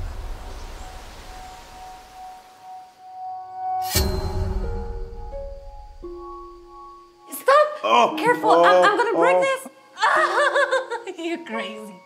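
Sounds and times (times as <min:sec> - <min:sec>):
faint high drone tone: 0:00.9 - 0:10.0.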